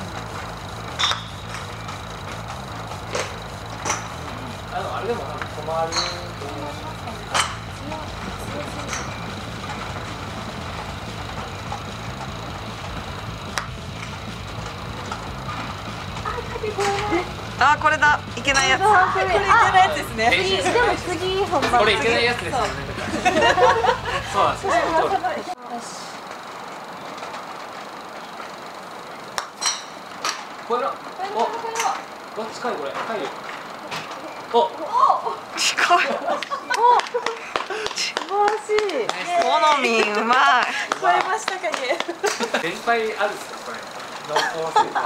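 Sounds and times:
steady low rumble: 0.0 - 25.6
outdoor hiss-like ambience: 0.0 - 45.0.

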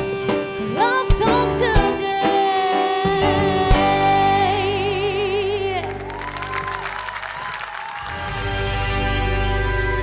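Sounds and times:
audience applauding: 5.8 - 9.2.

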